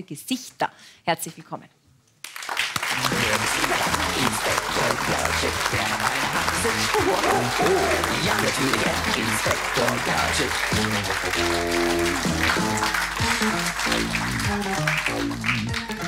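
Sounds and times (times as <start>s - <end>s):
audience applauding: 2.2s - 16.0s
music with repeating bass line: 3.0s - 16.0s.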